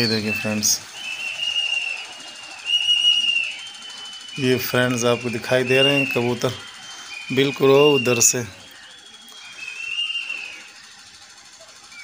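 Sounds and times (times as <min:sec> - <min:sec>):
high-pitched whistle: 0:00.0 - 0:12.0.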